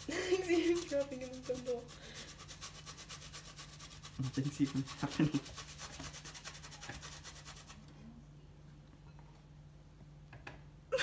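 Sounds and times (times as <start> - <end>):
zucchini rasping on metal grater: 0.0 - 7.8.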